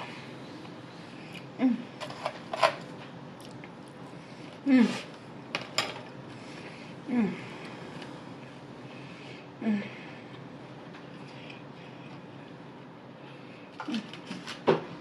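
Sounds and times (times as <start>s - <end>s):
person humming mm: 7.1s - 7.6s.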